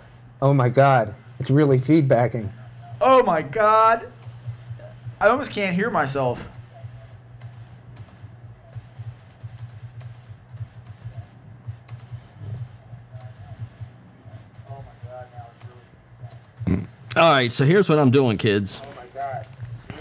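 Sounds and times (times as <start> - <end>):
steady low hum: 0.0 - 20.0
computer keyboard typing: 4.0 - 16.8.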